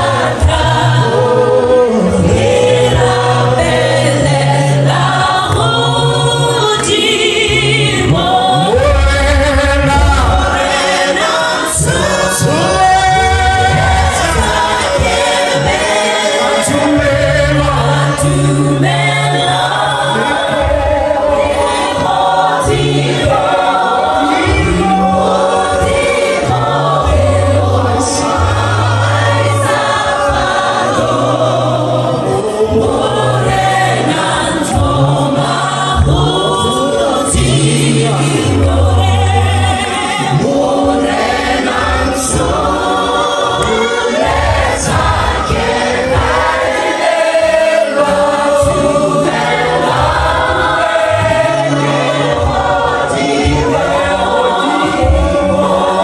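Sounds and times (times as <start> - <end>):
congregation singing: 0.0 - 56.0
low bass accompaniment: 0.0 - 56.0.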